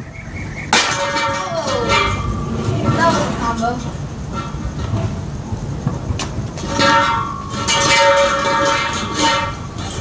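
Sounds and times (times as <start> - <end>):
scooter wheels rolling on concrete: 0.8 - 10.0.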